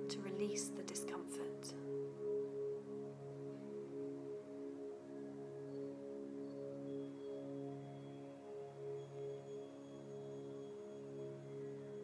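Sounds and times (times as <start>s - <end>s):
ambient meditation drone: 0.0s - 12.0s.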